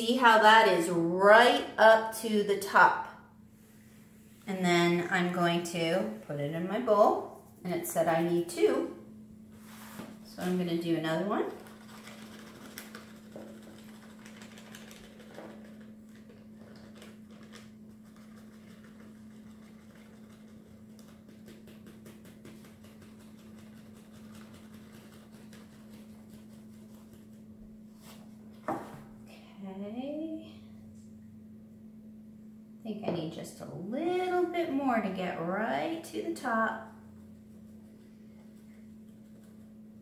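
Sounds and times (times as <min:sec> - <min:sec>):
steady low hum: 0:00.0 - 0:40.0
flour pouring into plastic cup: 0:11.5 - 0:27.3.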